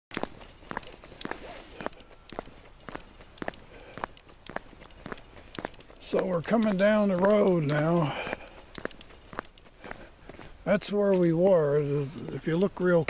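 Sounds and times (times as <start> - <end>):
footsteps on paved road: 0.1 - 13.0.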